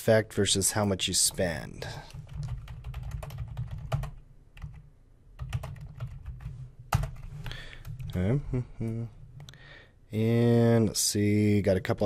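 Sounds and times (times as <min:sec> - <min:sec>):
computer keyboard typing: 0:02.1 - 0:08.2.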